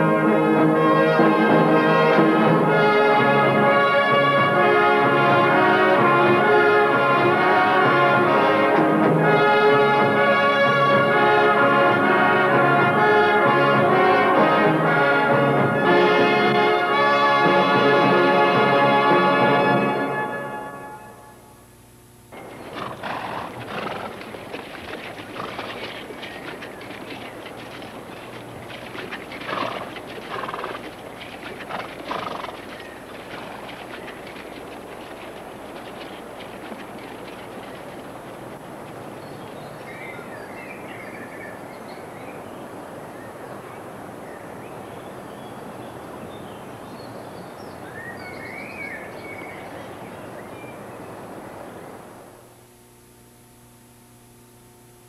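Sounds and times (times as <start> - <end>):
river water rushing: 22.4 - 44.2
birds chirping: 22.4 - 51.9.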